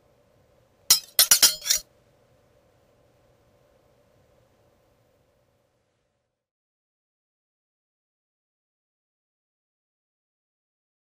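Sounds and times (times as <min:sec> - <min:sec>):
sharp ringing clinks: 0:00.9 - 0:01.8.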